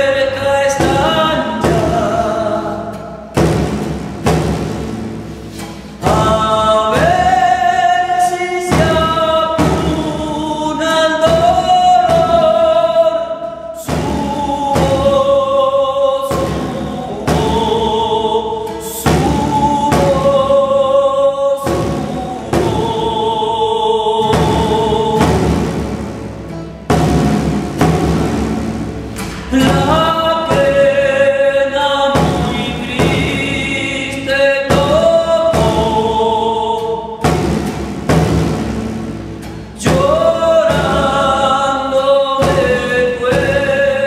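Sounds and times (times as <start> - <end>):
men singing folk song: 0.0 - 3.6, 5.8 - 26.0, 29.2 - 37.6, 39.6 - 44.0
frame drum beaten with stick: 0.0 - 44.0
nylon-string guitar: 0.0 - 44.0.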